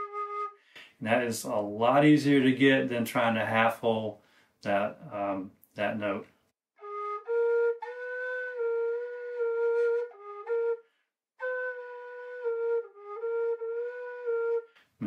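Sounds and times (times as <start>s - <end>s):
tin whistle playing low notes: 0.0s - 0.6s, 6.8s - 14.8s.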